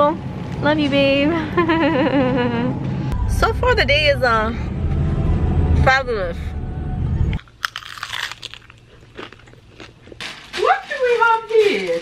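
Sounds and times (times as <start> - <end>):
person chewing crunchy chip: 7.4 - 10.6.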